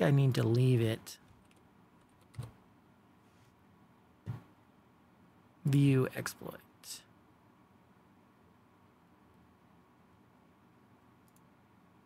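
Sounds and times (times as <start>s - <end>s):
computer keyboard keystrokes: 1.4s - 2.6s.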